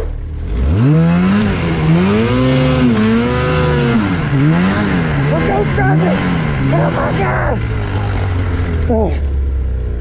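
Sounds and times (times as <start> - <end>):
snowmobile engine: 0.0 - 10.0.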